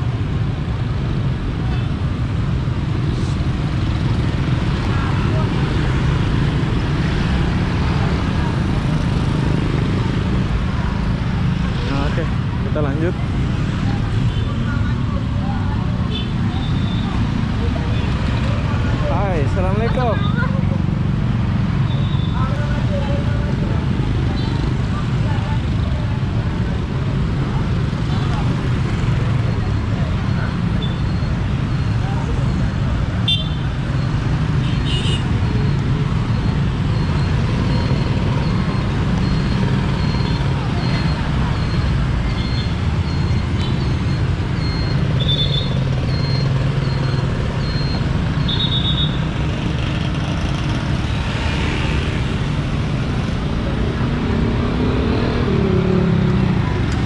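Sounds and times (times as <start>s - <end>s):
motorcycle engines rumbling: 0.0s - 57.0s
crowd voices: 3.1s - 34.6s, 35.3s - 57.0s.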